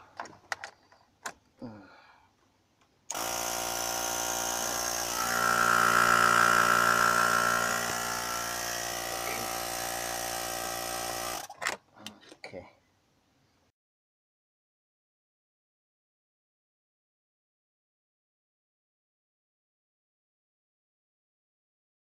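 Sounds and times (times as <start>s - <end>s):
air pump motor whine: 3.1s - 11.5s.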